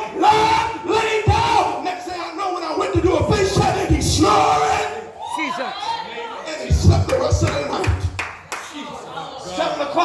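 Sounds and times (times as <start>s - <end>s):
congregation clapping: 7.0s - 8.8s.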